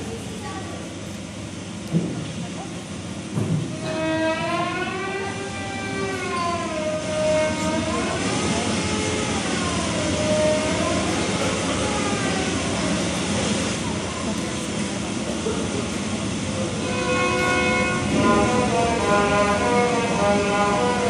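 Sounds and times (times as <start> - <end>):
children's voices: 0.0 - 1.0.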